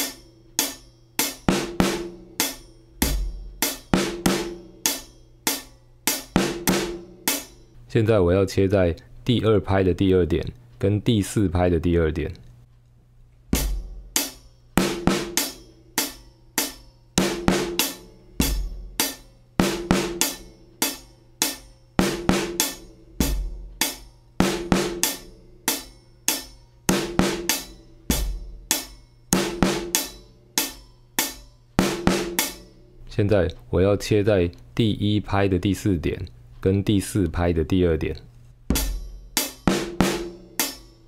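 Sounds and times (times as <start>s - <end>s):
drum kit playing groove: 0.0s - 7.8s, 13.5s - 33.7s, 38.6s - 41.0s.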